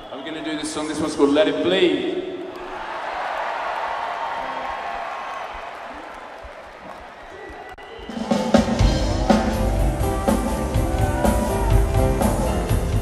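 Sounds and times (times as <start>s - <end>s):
crowd cheering: 0.0s - 1.4s, 2.3s - 13.0s
band playing guitar and bass: 8.5s - 13.0s.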